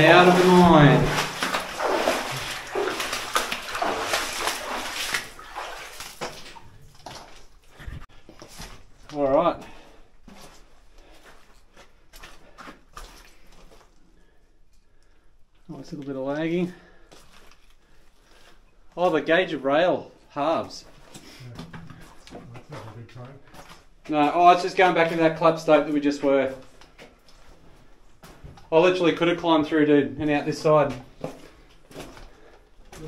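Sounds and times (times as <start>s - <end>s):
footsteps splashing through water: 0.0s - 8.6s, 12.2s - 13.9s.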